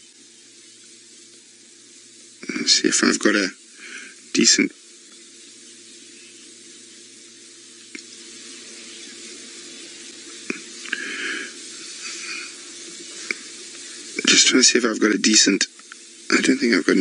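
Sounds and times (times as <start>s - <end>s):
hiss: 0.0s - 17.0s
sharp clicks: 7.8s - 8.1s.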